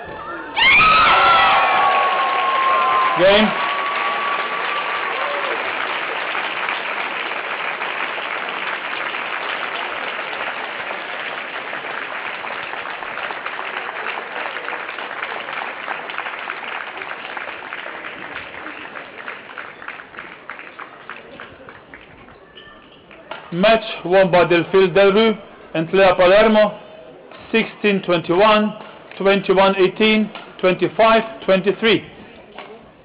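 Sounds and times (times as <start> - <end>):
loud shouts: 0.0 - 5.6
crowd applause: 0.6 - 22.5.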